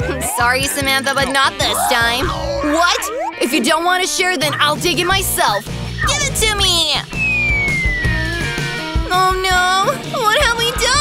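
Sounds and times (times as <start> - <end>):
background music: 0.0 - 11.0
cartoon whistle gliding downward: 1.8 - 3.5, 7.1 - 8.6.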